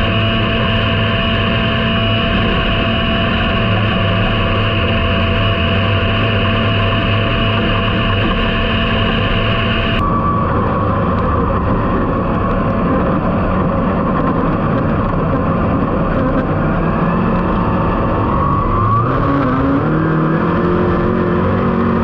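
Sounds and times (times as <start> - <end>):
race car engine droning: 0.0 - 22.0.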